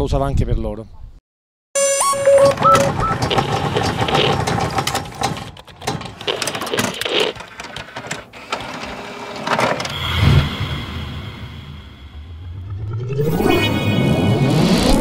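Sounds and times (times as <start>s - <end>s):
rapid clicks: 2.5s - 8.7s
whooshes: 10.0s - 15.0s.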